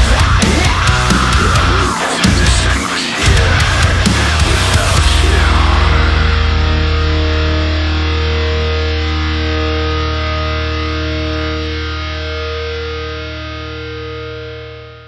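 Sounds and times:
distorted electric guitar chord ringing: 0:00.0 - 0:15.0.

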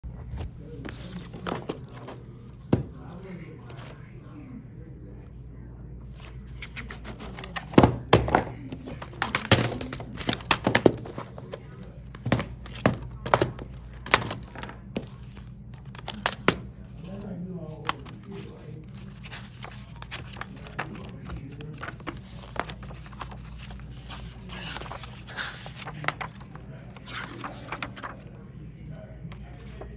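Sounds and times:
plastic cases clicking and knocking: 0:07.6 - 0:11.6.

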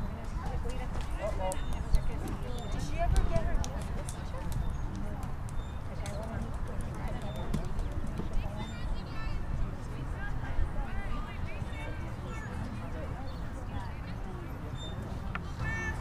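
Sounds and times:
distant indistinct voices: 0:00.0 - 0:16.0.

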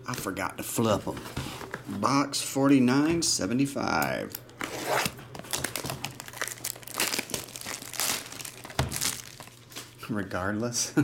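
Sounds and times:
plastic shrink wrap crinkling and tearing: 0:04.3 - 0:10.0.

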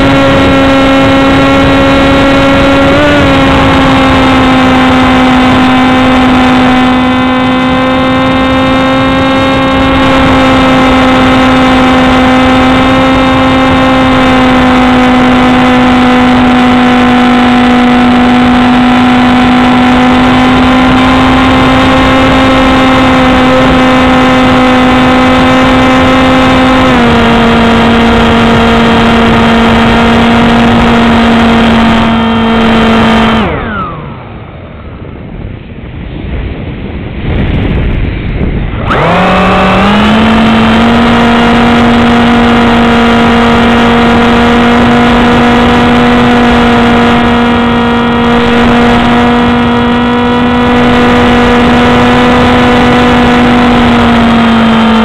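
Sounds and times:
model plane motor whine: 0:00.0 - 0:34.4, 0:38.7 - 0:55.0
wind rushing over microphone: 0:00.0 - 0:55.0.

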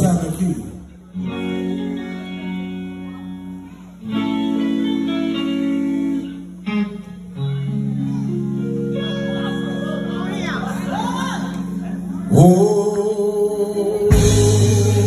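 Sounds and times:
electric guitar sustained chords: 0:00.0 - 0:15.0.

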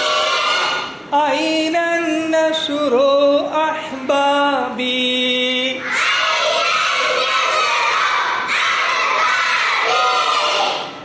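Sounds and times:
children singing in chorus: 0:00.0 - 0:01.0, 0:05.8 - 0:11.0.

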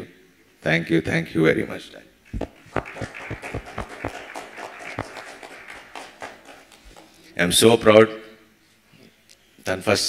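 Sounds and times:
microphone thumps: 0:02.3 - 0:05.3
audience clapping: 0:02.4 - 0:07.4.

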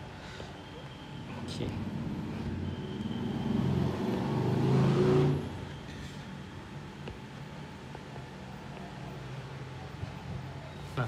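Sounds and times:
vehicle engine: 0:00.8 - 0:11.0.

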